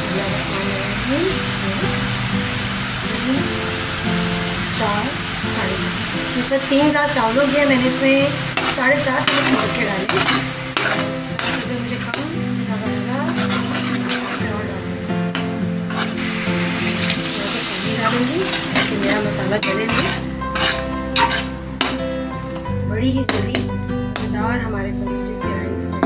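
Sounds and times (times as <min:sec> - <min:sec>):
sausages sizzling in oil: 0:00.0 - 0:22.6
background music with held chords: 0:00.0 - 0:26.0
water poured into hot oil: 0:15.9 - 0:18.8
spoon clinking against pot: 0:19.6 - 0:22.0.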